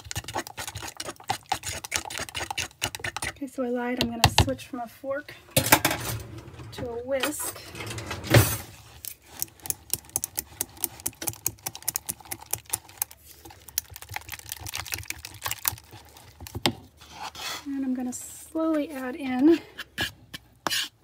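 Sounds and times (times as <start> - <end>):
whisk beating in a plastic jug: 0.0 - 3.4, 9.4 - 16.8.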